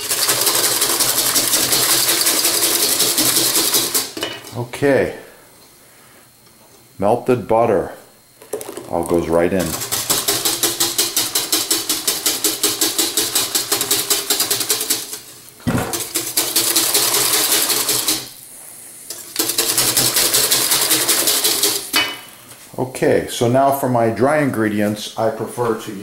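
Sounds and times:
whisk clicking in metal bowl: 0:00.0 - 0:04.2, 0:08.6 - 0:18.3, 0:19.1 - 0:22.0.

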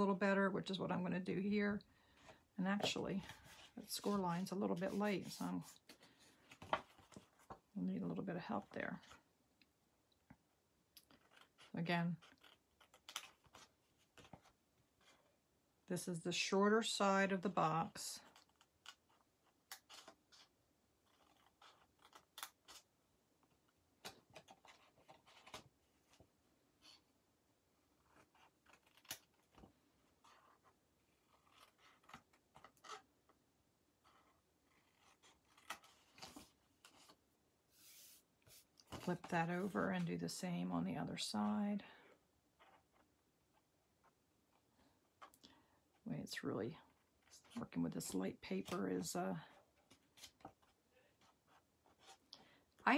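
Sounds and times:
paper rustling: 0:02.0 - 0:07.6, 0:24.0 - 0:26.2.

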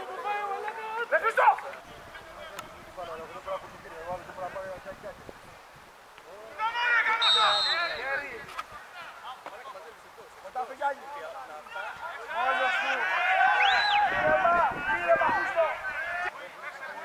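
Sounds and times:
men calling and shouting: 0:00.0 - 0:17.0
referee's whistle blast: 0:07.2 - 0:08.2, 0:13.6 - 0:14.1.

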